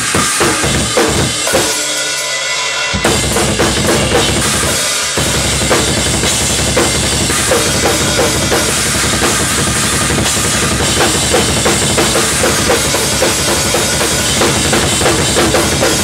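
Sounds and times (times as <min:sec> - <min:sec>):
bass drum: 0:00.0 - 0:01.7, 0:03.0 - 0:16.0
snare and toms: 0:00.0 - 0:01.8
ringing cymbals: 0:00.0 - 0:16.0.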